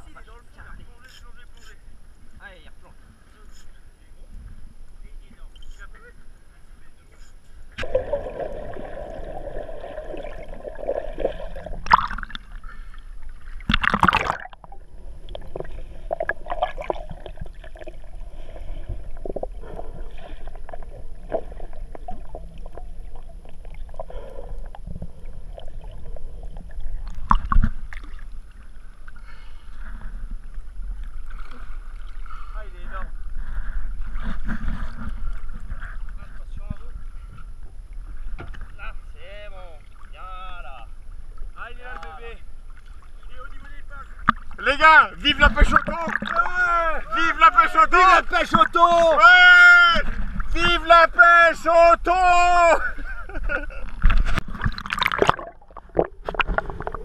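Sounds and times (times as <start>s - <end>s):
sea water sloshing and lapping: 7.8s - 41.6s, 42.5s - 49.1s, 52.9s - 57.0s.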